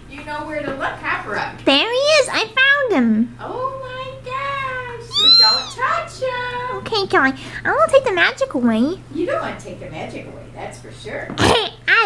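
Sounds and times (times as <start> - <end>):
child holding a vocal note: 5.1 - 5.8
child squealing: 5.1 - 5.8.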